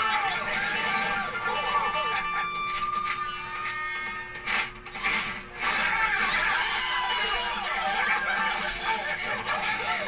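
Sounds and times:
crowd voices: 5.0 - 10.0.

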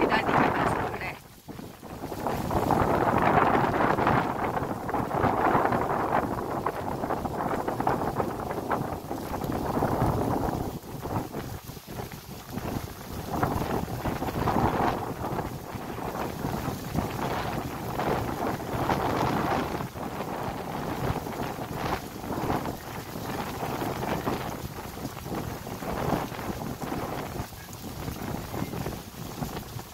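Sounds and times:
wind buffeting microphone: 0.0 - 29.9.

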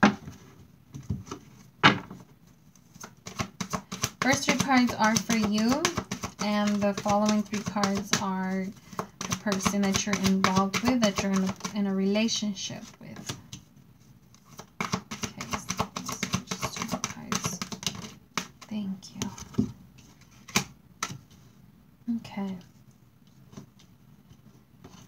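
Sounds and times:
cards being shuffled: 1.2 - 11.9, 14.3 - 21.4.

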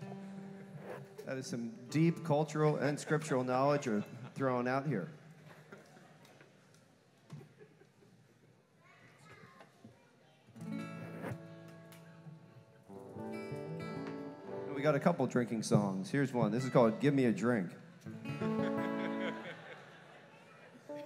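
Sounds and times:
guitar chord strummed: 0.0 - 2.3, 12.9 - 15.0, 18.1 - 19.4.

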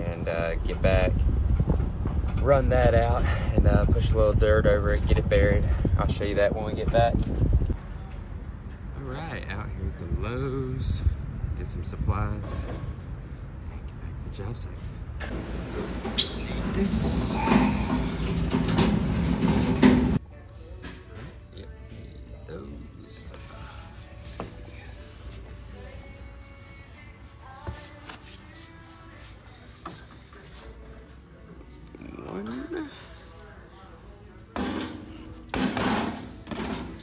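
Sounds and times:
faint background music: 0.0 - 37.0
background voices: 15.4 - 20.2
metal cart rattling over concrete: 16.4 - 20.2.

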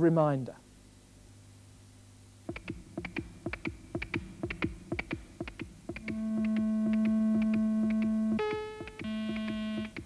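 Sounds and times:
pulsing synthesizer beat: 2.5 - 10.0
sustained synthesizer note: 6.0 - 9.9.

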